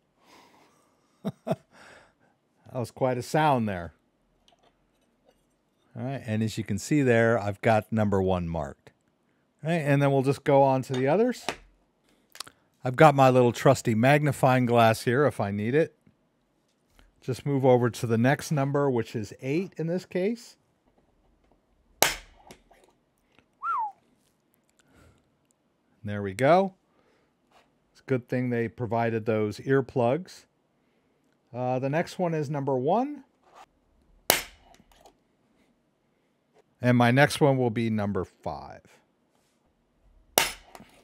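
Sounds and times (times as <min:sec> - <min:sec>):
centre punch pop on metal: 0:22.0 - 0:22.6, 0:34.3 - 0:34.8, 0:40.4 - 0:40.8
falling whistle-like tone: 0:23.6 - 0:24.0.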